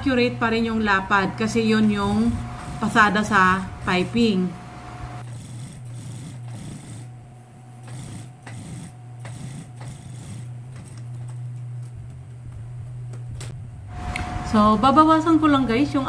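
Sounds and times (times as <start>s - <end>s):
sewing machine motor humming: 0.0s - 11.5s.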